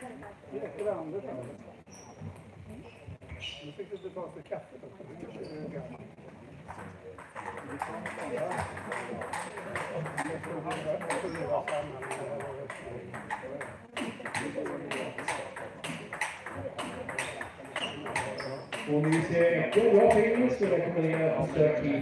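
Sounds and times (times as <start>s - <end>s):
table tennis ball clicking: 6.7s - 21.3s.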